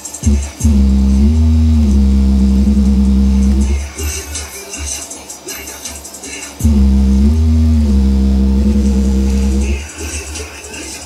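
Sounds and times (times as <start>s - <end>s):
deep bass hit: 0.2s - 3.8s, 6.6s - 9.8s
long held bass note: 0.2s - 3.8s, 6.6s - 9.8s.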